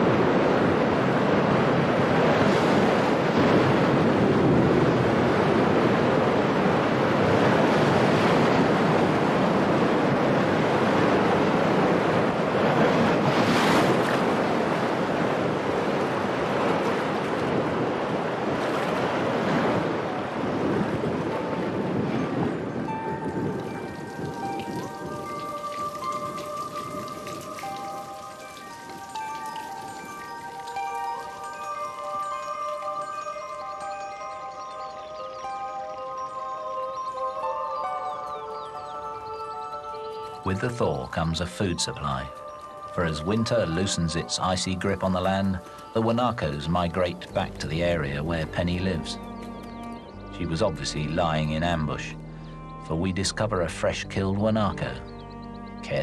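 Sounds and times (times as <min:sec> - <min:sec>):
wind and driving rain: 0:00.0 - 0:52.9
glockenspiel-like music: 0:19.9 - 0:56.0.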